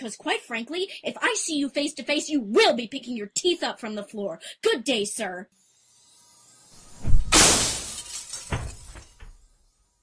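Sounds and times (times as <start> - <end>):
shattered pieces clattering: 7.3 - 9.3.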